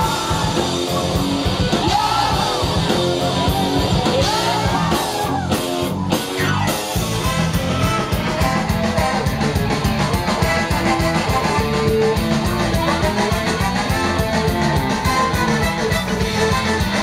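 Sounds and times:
bass guitar: 0.0s - 17.0s
drums playing fast beat: 0.0s - 17.0s
electric guitar: 0.0s - 17.0s.

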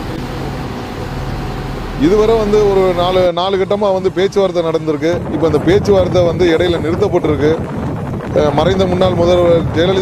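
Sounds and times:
low hum: 0.0s - 9.8s.

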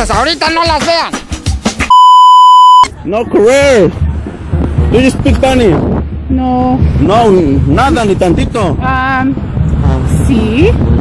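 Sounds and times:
music: 0.0s - 2.0s, 2.8s - 11.0s
censor bleep: 1.9s - 2.9s.

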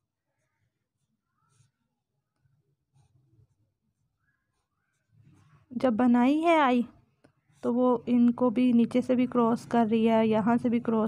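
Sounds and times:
pencils scratching on paper: 0.3s - 2.0s, 2.8s - 6.3s.

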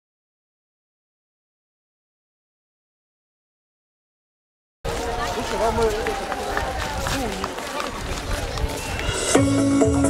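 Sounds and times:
outdoor background noise: 4.8s - 10.0s.

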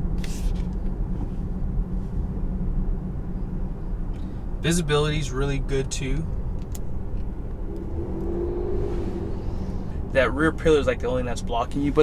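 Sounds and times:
road and drivetrain rumble: 0.0s - 12.0s.

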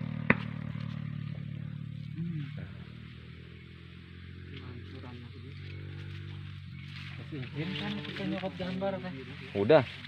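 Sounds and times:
engine running: 0.0s - 10.0s.

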